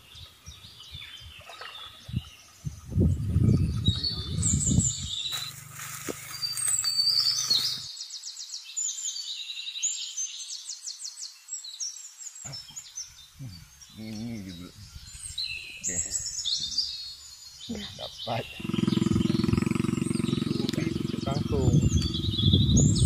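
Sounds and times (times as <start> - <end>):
small birds chirping: 0.0 - 23.0
rapid high bird trills: 4.1 - 7.9, 18.2 - 23.0
low rough noise: 18.6 - 23.0.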